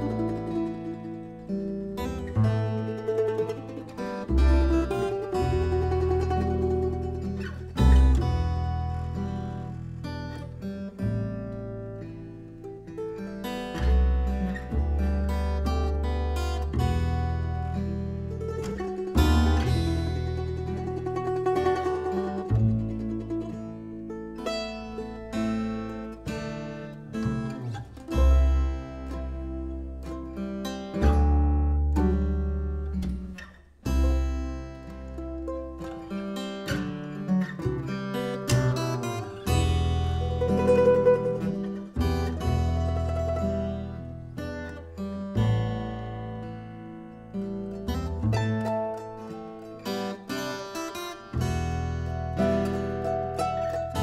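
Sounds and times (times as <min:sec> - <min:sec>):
acoustic guitar: 0:00.0 - 0:54.0
mandolin: 0:00.0 - 0:54.0
plucked double bass: 0:00.0 - 0:54.0.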